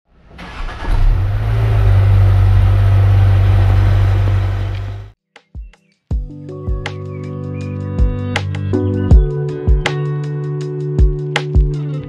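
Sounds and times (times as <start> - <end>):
car engine starting and running: 0.1 - 5.2.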